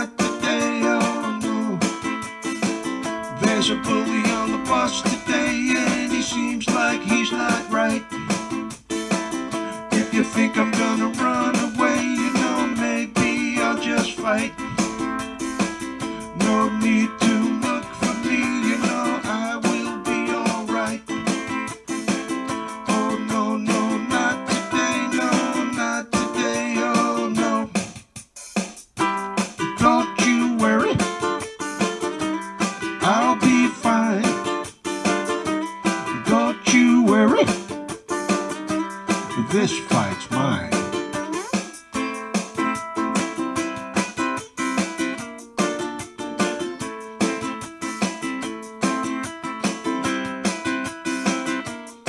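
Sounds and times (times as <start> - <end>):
man singing: 0.0 - 2.1, 3.3 - 8.7, 9.5 - 21.8, 22.5 - 27.9, 29.6 - 31.3, 33.0 - 34.7, 36.0 - 37.7, 39.2 - 41.0
plucked string accompaniment: 0.0 - 52.0.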